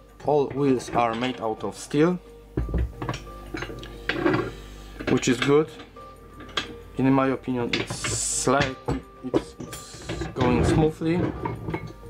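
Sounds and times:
metal clinks and knocks: 2.6s - 6.8s, 7.7s - 12.0s.

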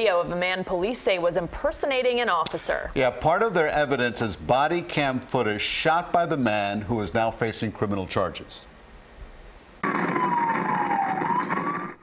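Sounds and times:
electronic siren wailing: 9.8s - 12.0s.

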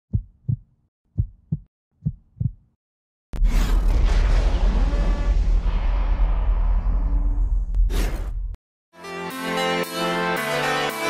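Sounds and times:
heartbeat thumps: 0.1s - 2.7s
loud boom with deep rumble: 3.4s - 7.8s.

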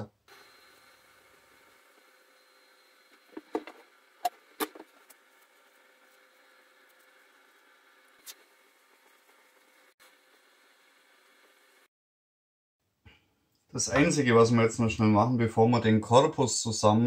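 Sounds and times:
workshop room hum: 0.0s - 11.9s.

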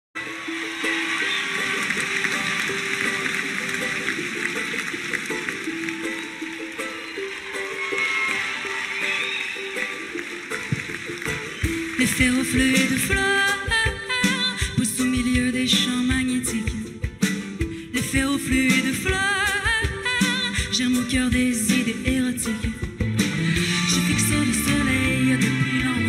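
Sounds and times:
strings playing a melody: 0.2s - 18.0s.

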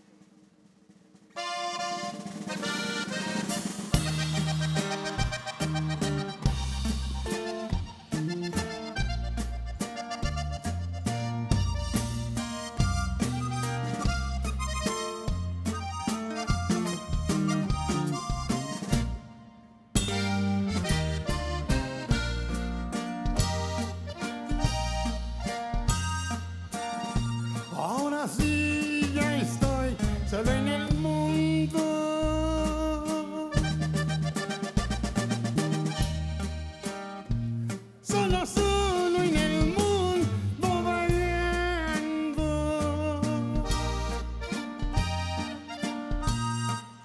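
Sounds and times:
bass and drums: 0.0s - 19.4s, 20.0s - 47.0s
button accordion melody: 1.3s - 47.0s.

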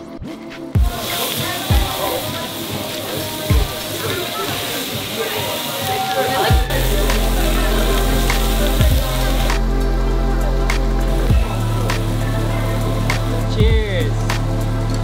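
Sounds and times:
background music with thumping beat: 0.0s - 4.7s, 6.3s - 15.0s
meat sizzling on griddle: 0.8s - 14.8s
bass line: 6.5s - 15.0s.

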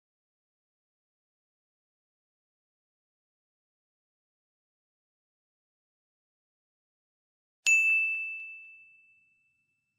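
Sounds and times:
bell-like ding chime: 7.7s - 9.9s.

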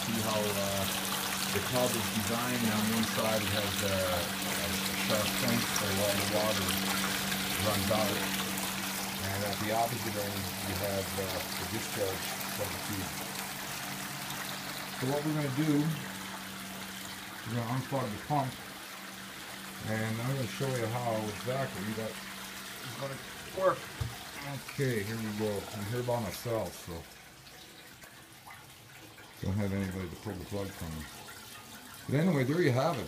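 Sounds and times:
electric pump humming: 0.0s - 33.0s
water running and spilling: 0.0s - 33.0s.

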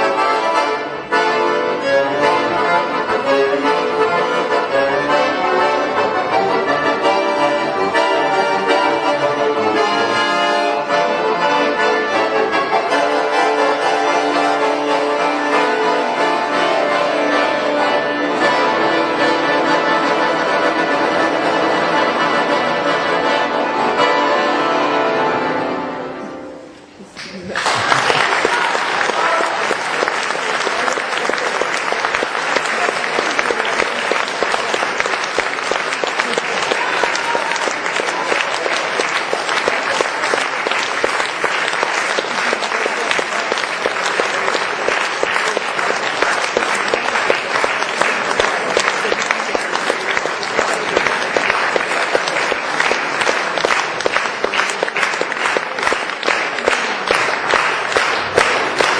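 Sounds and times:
accordion music: 0.0s - 27.0s, 28.4s - 58.9s
audience applauding: 27.1s - 58.9s.

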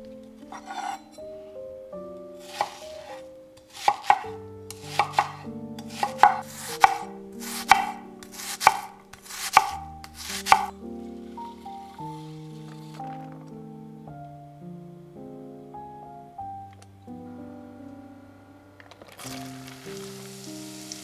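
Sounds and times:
knife chopping onion on board: 2.4s - 10.7s.

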